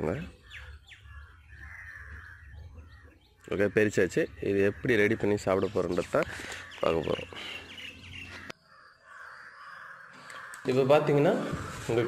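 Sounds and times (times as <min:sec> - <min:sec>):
small birds chirping: 0:00.0 - 0:12.0
crow cawing: 0:01.0 - 0:03.0, 0:06.2 - 0:12.0.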